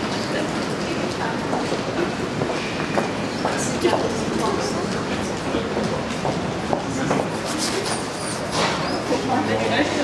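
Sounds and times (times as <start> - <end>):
people talking: 0.0 - 2.3, 3.4 - 8.0, 9.0 - 10.0.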